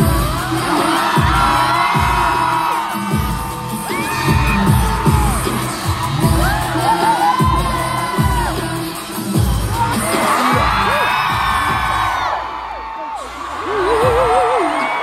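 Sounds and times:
crowd screaming and whooping: 0.0 - 15.0
pop music over loudspeakers: 0.0 - 15.0.

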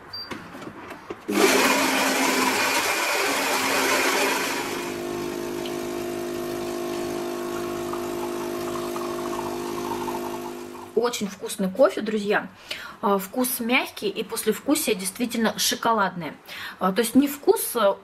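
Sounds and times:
grinder grinding coffee beans: 1.3 - 10.9
espresso machine pump humming: 1.3 - 11.0.

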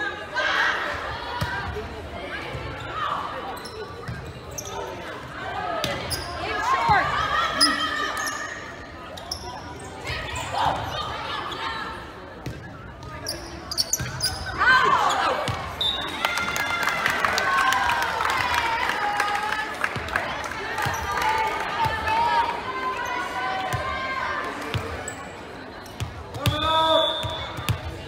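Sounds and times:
shoe squeaks on hardwood court: 3.5 - 5.0, 13.2 - 14.6
players and spectators shouting: 14.5 - 19.7, 20.4 - 25.0.

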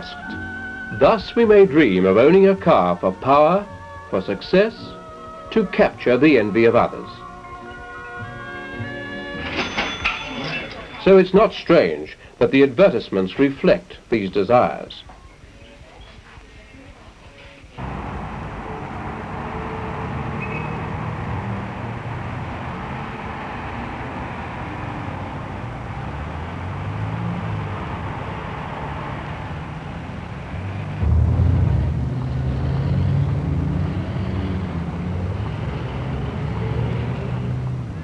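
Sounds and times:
steady street hum: 0.0 - 38.0
car engines passing: 17.8 - 38.0
deep engine rumble: 29.0 - 36.1.

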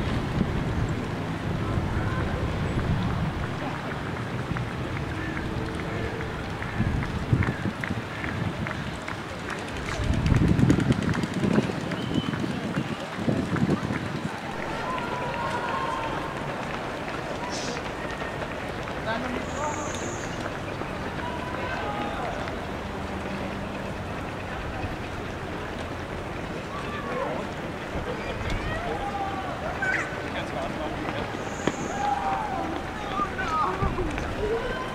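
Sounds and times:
wind gusts on microphone: 0.0 - 18.4
runners' footsteps on road: 0.0 - 34.9
scattered voices: 0.8 - 34.9.

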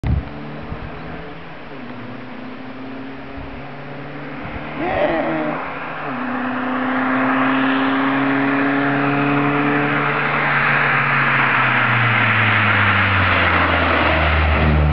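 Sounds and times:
rally car engine approaching: 0.0 - 14.9.

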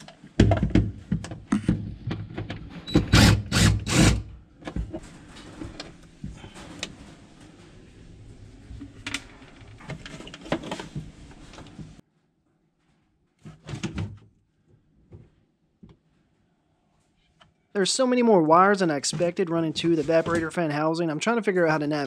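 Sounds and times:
plastic knocking and rattling: 0.4 - 2.7
cordless drill-driver running: 3.0 - 4.2.

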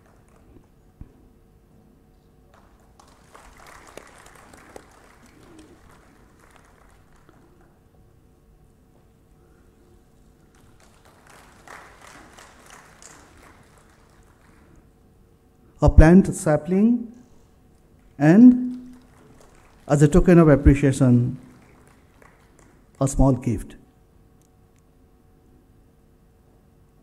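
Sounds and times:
faint audience applause: 0.0 - 0.7, 2.5 - 7.8, 10.3 - 15.0, 17.8 - 23.2
low steady hum: 0.0 - 27.0.

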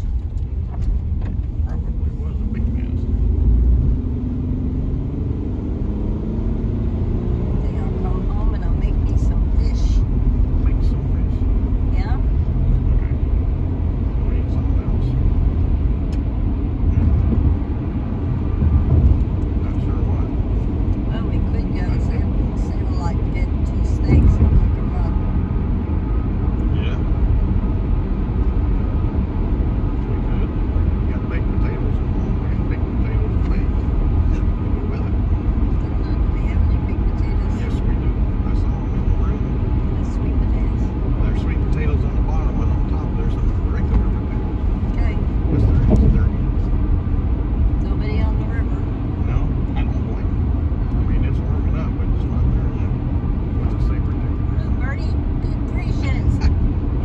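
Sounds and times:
car engine running: 0.0 - 57.0.

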